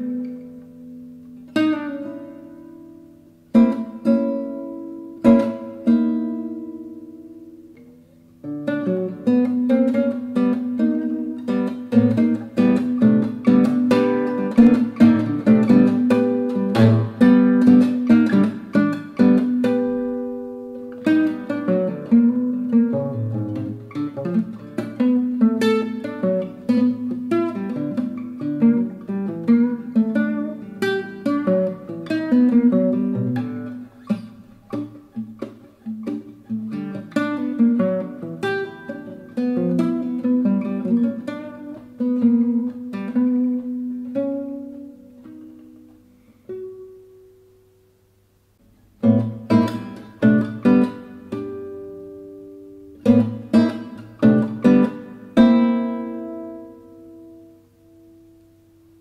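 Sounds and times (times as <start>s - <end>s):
classical guitar fingerstyle playing: 0.0s - 59.0s.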